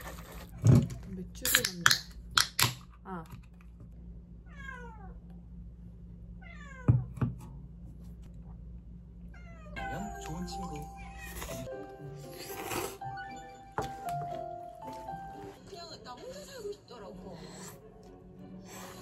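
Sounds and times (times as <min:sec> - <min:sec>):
cat meowing: 0:04.4 - 0:05.2, 0:06.4 - 0:07.0
soft background music: 0:09.8 - 0:19.0.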